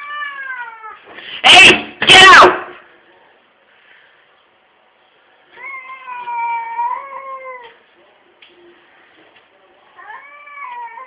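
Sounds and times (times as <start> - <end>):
cats yowling: 0.0 - 1.0, 5.5 - 7.8, 10.0 - 11.0.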